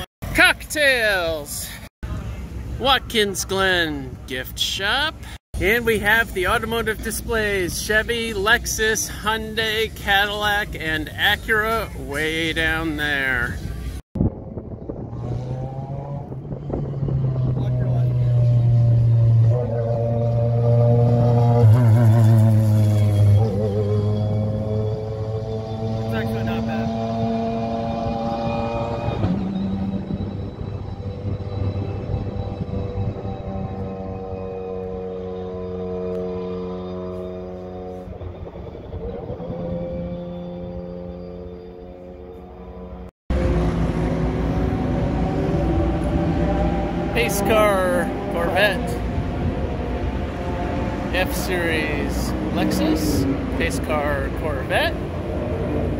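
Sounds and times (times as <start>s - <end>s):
racing car engines passing: 11.8s - 55.9s.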